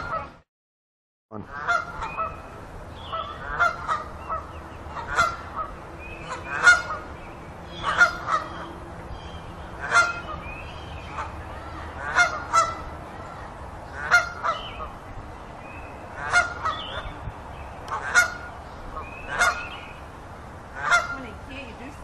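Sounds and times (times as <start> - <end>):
geese honking: 1.4 - 15.2, 16.1 - 17.2, 17.8 - 20.1, 20.7 - 21.4.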